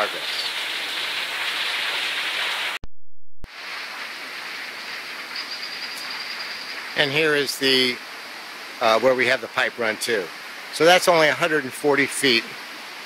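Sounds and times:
outdoor rushing hiss: 3.5 - 13.0.

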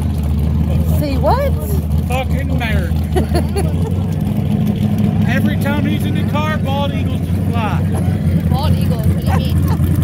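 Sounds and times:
loud deep engine idling: 0.0 - 10.0.

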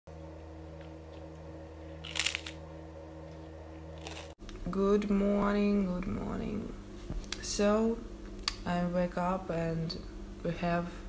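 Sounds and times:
steady low hum: 0.1 - 11.0
crunchy bite into rice cake: 2.1 - 2.6, 4.0 - 4.3.

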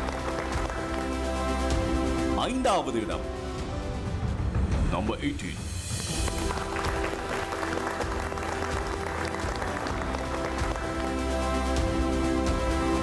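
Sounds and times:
crowd clapping: 0.0 - 1.8, 5.9 - 12.8
background music: 0.0 - 13.0.

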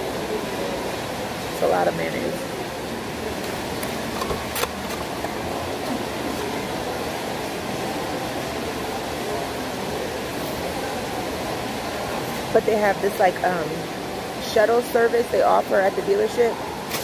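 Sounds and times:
food court background noise: 0.0 - 17.0.

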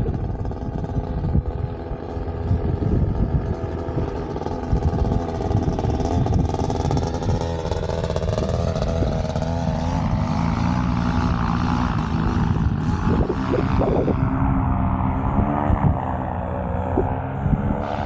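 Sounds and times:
paramotor engine droning: 0.0 - 18.0
wind rumbling on microphone: 0.0 - 18.0.

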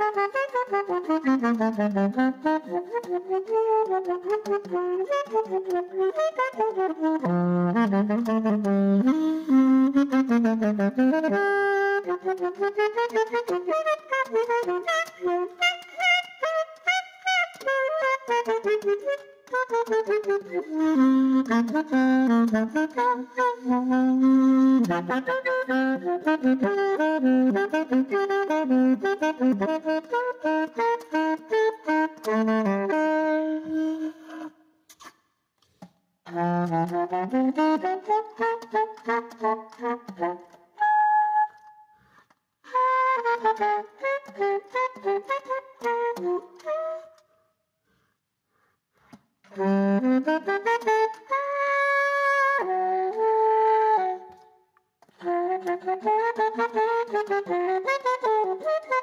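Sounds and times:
solo alto saxophone improvising: 0.0 - 48.1, 49.0 - 59.0.

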